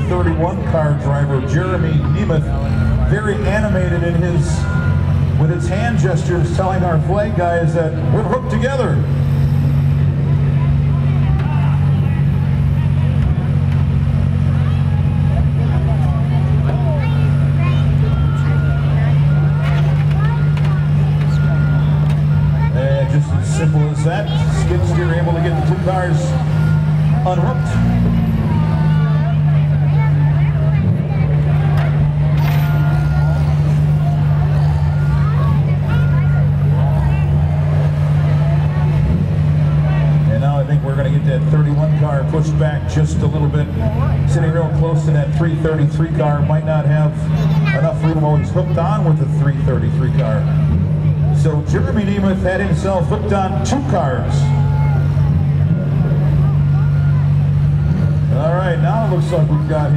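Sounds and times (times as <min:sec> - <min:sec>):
crowd voices: 0:00.0 - 0:59.9
engines droning: 0:00.0 - 0:59.9.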